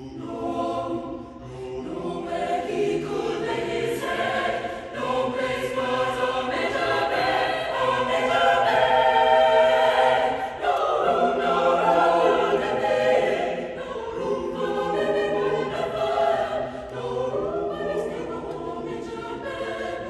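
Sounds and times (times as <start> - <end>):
choir singing in harmony: 0.0 - 20.0.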